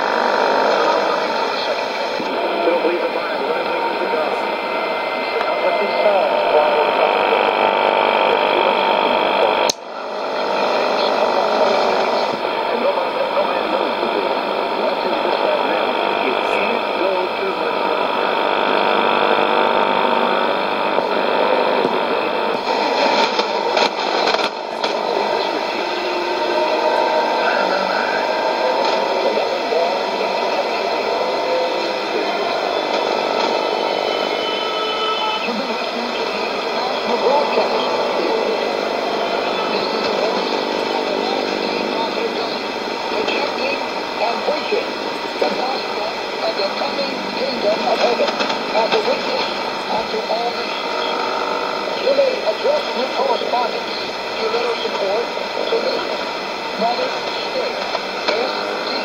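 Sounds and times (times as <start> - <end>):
faint radio voice: 0.0 - 59.0
radio crackle: 0.0 - 59.0
radio static and hiss: 0.0 - 59.0
radio whistles: 0.0 - 59.0.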